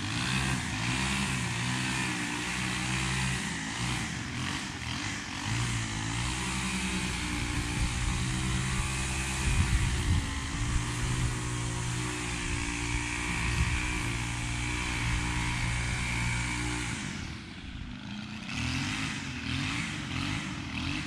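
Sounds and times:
push mower engine running: 0.0s - 21.0s.

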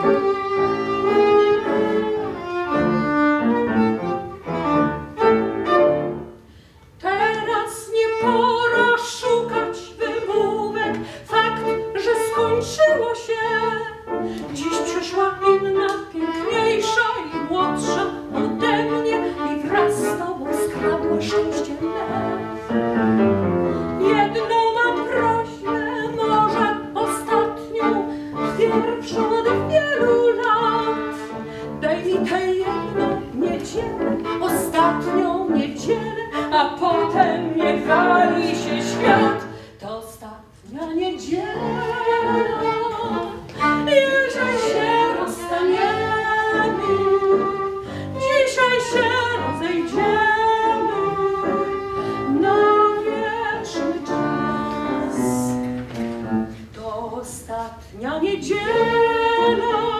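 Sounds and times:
grand piano: 0.0s - 39.8s, 40.7s - 57.6s
violin: 0.0s - 59.9s
woman singing classically: 7.0s - 22.6s, 24.0s - 55.8s, 56.7s - 59.9s.

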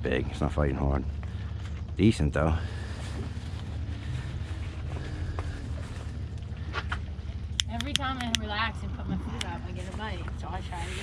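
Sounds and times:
boat low rumble: 0.0s - 11.0s.

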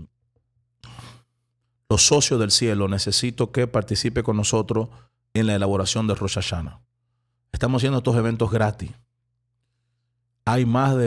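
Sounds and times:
man breathing at microphone: 0.8s - 1.5s
man speaking: 1.9s - 6.8s, 7.6s - 9.0s, 10.4s - 11.0s.

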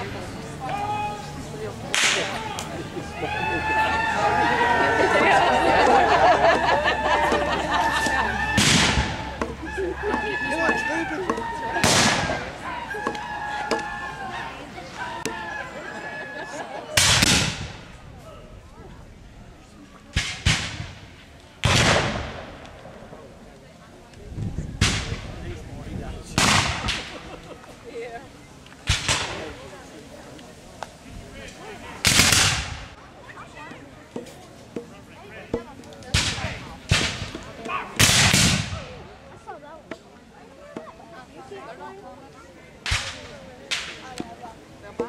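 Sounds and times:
musket shots: 21.6s - 22.4s, 32.0s - 32.8s.

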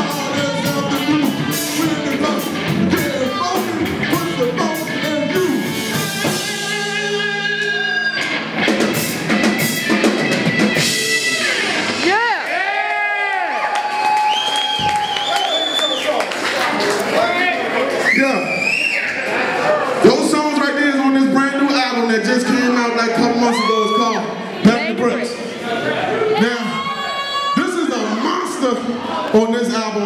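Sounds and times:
funk band playing: 0.0s - 12.4s.

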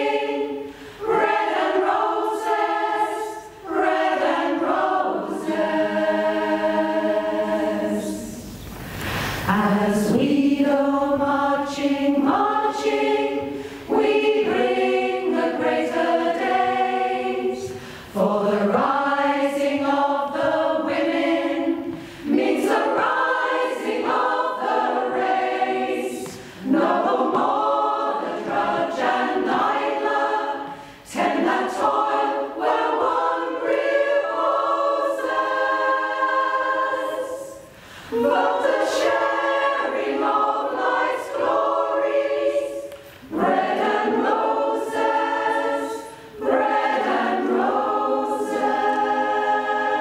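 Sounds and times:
choir singing unaccompanied: 0.0s - 8.7s, 9.5s - 50.0s.

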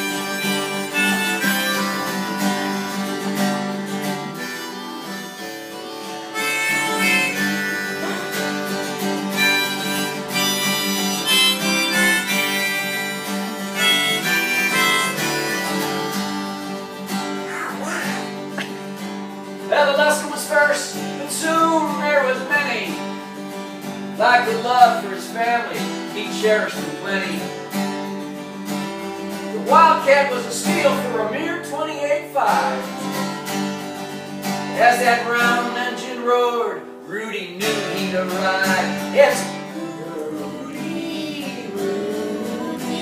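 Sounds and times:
harmonica melody: 0.0s - 25.1s, 37.6s - 43.0s
acoustic guitar strumming: 0.0s - 43.0s.

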